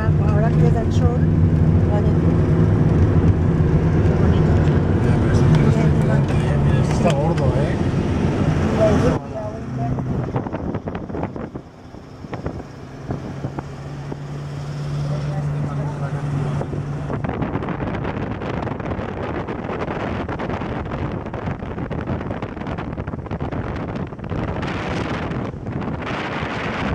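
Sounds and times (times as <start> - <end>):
wind buffeting microphone: 0.0 - 14.9, 15.6 - 26.9
low engine drone: 0.0 - 26.9
road noise: 0.0 - 26.9.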